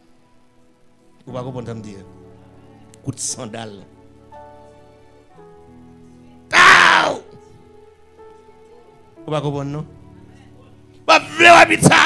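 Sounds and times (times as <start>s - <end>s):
soft background music: 0.0s - 12.0s
man shouting through microphone: 6.5s - 7.3s, 11.1s - 12.0s.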